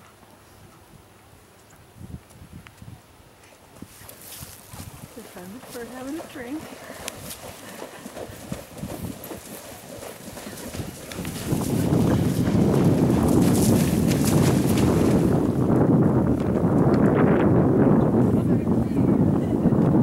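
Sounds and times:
hooves splashing through water: 0:03.6 - 0:17.2
hooves striking ground: 0:03.7 - 0:17.2.

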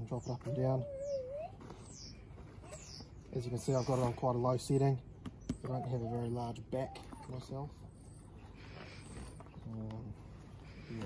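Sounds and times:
bird chirping: 0:00.0 - 0:11.0.

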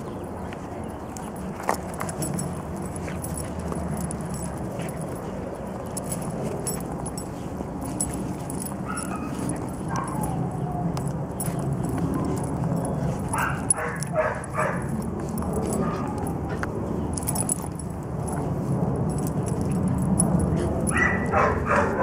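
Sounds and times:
small dogs barking: 0:08.6 - 0:16.6, 0:20.8 - 0:22.0.

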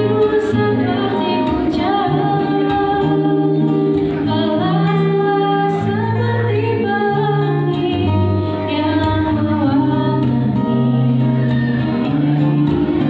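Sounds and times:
acoustic guitars strummed and picked: 0:00.0 - 0:13.0.

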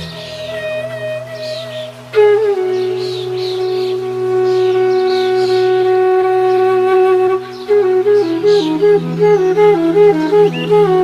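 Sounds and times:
flute holding a long note: 0:00.0 - 0:11.0.

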